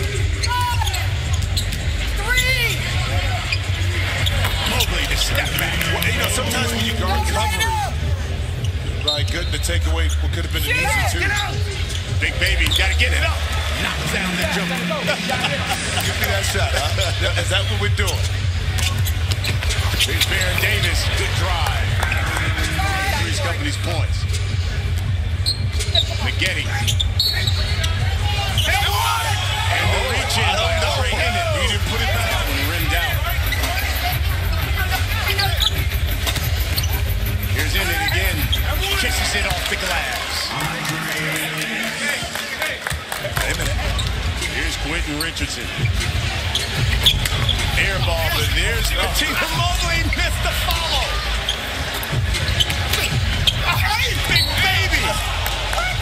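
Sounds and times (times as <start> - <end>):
music over speakers: 0.0 - 8.9, 10.7 - 40.1, 45.6 - 56.0
crowd voices: 0.0 - 56.0.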